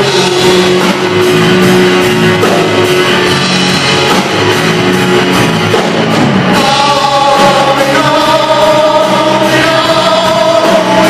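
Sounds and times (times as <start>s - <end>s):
voices singing in harmony: 6.5s - 11.0s.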